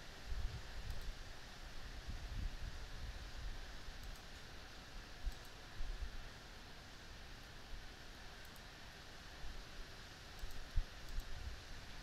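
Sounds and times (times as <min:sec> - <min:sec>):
steady low hiss: 0:00.0 - 0:12.0
computer mouse clicks: 0:00.8 - 0:01.2, 0:04.0 - 0:04.5, 0:05.3 - 0:05.6, 0:08.4 - 0:08.7, 0:10.4 - 0:11.4.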